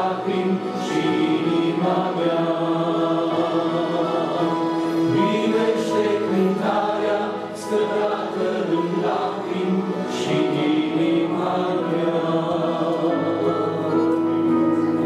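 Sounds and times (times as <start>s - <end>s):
electric keyboard chords: 0.0s - 15.0s
man singing into microphone: 8.8s - 14.5s.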